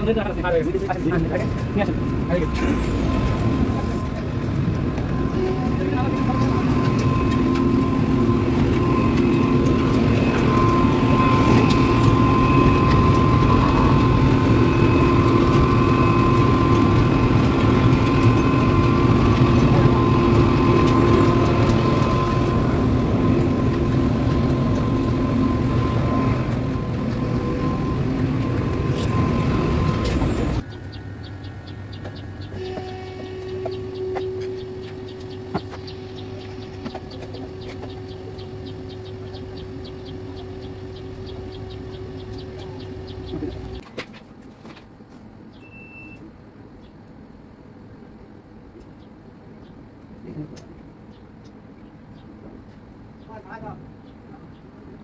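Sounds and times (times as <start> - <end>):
plant machinery running: 0.0 - 43.8.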